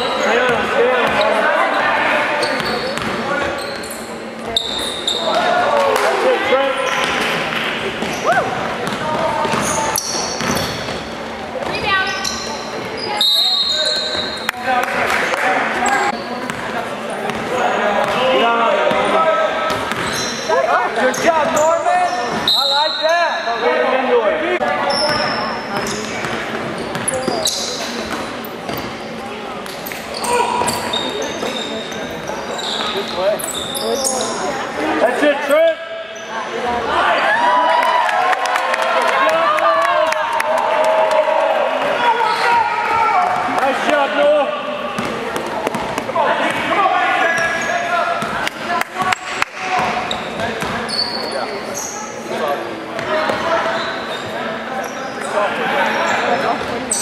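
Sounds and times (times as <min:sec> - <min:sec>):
basketball bouncing on wood court: 0:02.6 - 0:03.2, 0:08.0 - 0:09.8, 0:10.4 - 0:11.0, 0:19.7 - 0:20.2, 0:25.1 - 0:28.9, 0:45.0 - 0:46.7, 0:49.8 - 0:50.8.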